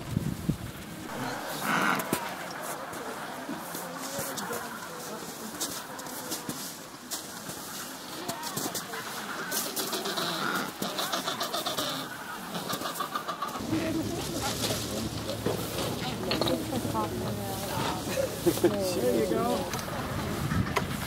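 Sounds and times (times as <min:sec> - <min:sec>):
penguins squawking: 0:09.3 - 0:14.1.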